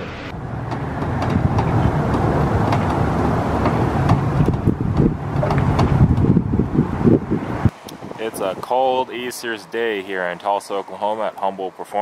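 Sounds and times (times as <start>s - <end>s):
wind buffeting microphone: 0.3s - 9.2s.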